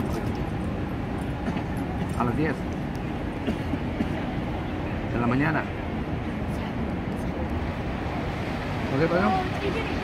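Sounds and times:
fountain jets spraying water: 0:00.0 - 0:10.0.

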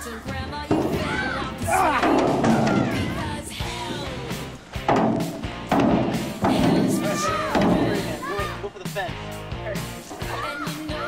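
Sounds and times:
background music: 0:00.0 - 0:11.0
metal trash can kicked: 0:00.7 - 0:08.4.

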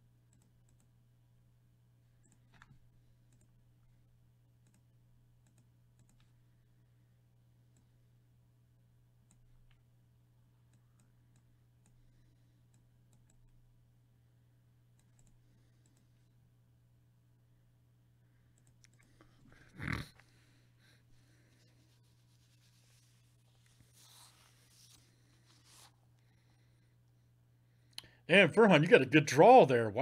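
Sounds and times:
computer mouse clicks: 0:00.3 - 0:00.9, 0:02.2 - 0:03.6, 0:04.6 - 0:06.4, 0:09.2 - 0:09.9, 0:10.7 - 0:12.0, 0:12.7 - 0:13.6, 0:14.9 - 0:16.1, 0:18.6 - 0:19.4.

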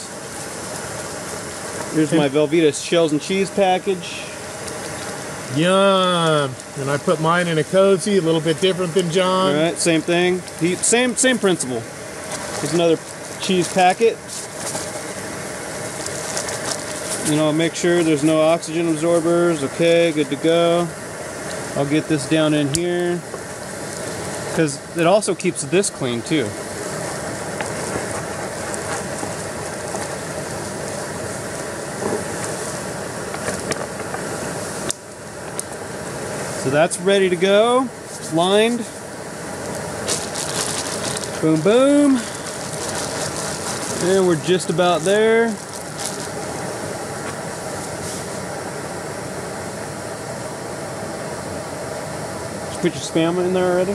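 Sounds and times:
stove burner hissing: 0:00.0 - 0:53.9
plastic bags crinkling: 0:15.9 - 0:17.5, 0:39.6 - 0:46.7.

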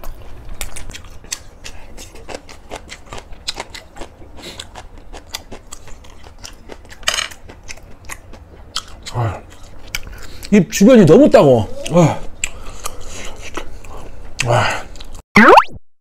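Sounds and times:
crunchy chewing: 0:00.0 - 0:10.6.

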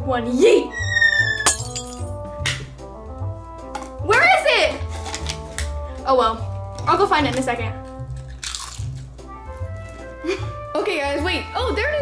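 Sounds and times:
background music: 0:00.0 - 0:12.0
glass breaking crash: 0:01.4 - 0:02.1.

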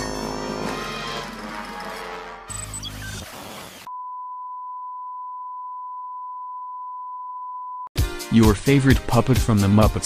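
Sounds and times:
music: 0:00.0 - 0:03.2, 0:08.0 - 0:10.0.

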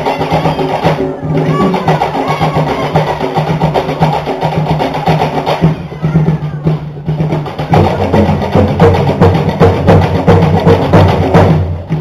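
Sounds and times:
drum ensemble playing fast rhythm: 0:00.0 - 0:12.0.

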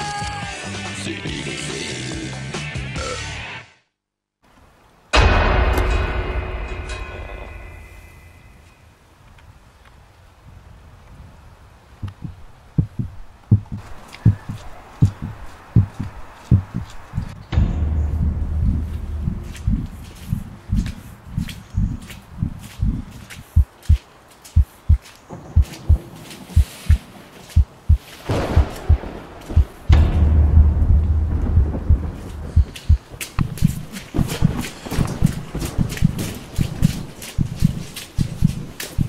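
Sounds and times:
deep rumble: 0:12.0 - 0:23.7, 0:27.7 - 0:38.8
dull thuds: 0:12.0 - 0:23.8, 0:27.6 - 0:39.0
heartbeat thumps: 0:12.0 - 0:39.0.

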